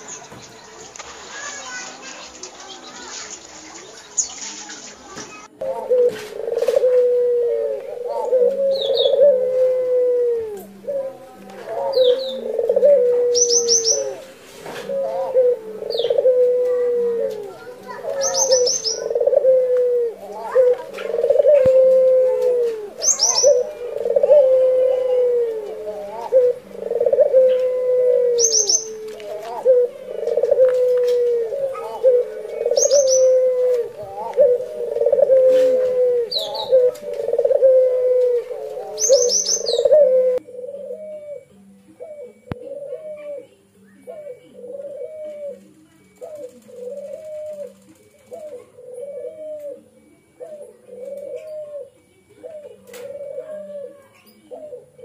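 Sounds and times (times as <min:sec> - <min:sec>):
dove cooing: 0:05.5 - 0:55.0
bird chirping: 0:17.9 - 0:19.6, 0:20.3 - 0:40.2.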